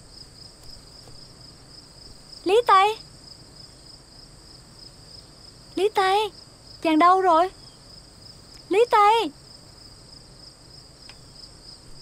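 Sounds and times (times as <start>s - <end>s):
crickets chirping: 0.0s - 12.0s
woman calling out: 2.4s - 3.0s, 5.8s - 7.5s, 8.7s - 9.3s.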